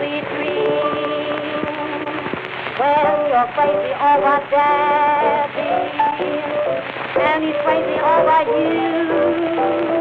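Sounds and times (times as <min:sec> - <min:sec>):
blues jazz instrumental: 0:00.0 - 0:10.0
record crackle and hiss: 0:00.0 - 0:10.0.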